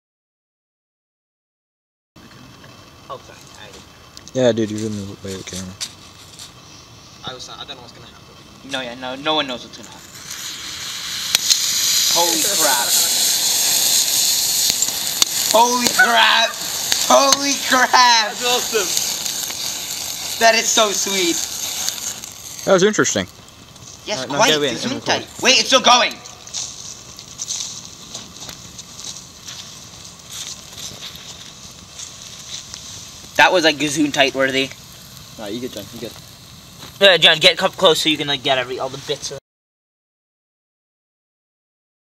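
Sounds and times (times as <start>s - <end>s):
thermite burning with a hiss: 2.2s - 39.4s
sharp pops: 9.8s - 38.2s.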